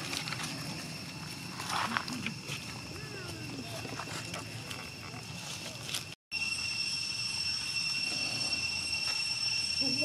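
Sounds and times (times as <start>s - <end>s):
rustles in dry leaves: 0.0s - 10.0s
high-pitched drone: 6.3s - 10.0s.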